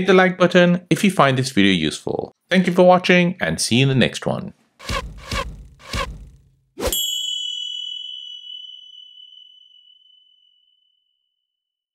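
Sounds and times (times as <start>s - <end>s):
bell-like ding: 6.9s - 11.0s.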